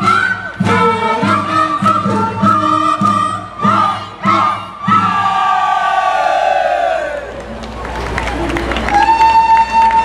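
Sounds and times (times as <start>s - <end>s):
folk-dance music: 0.0s - 10.0s.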